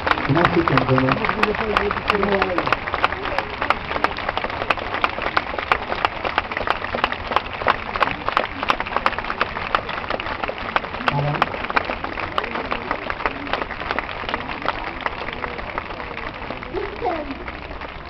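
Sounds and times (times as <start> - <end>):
murmur of crowd voices: 0.0 - 18.0
people clapping in rhythm: 0.0 - 18.0.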